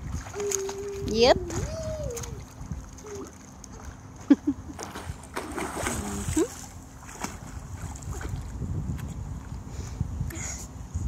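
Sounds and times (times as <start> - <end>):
pool water splashing: 0.0 - 8.6.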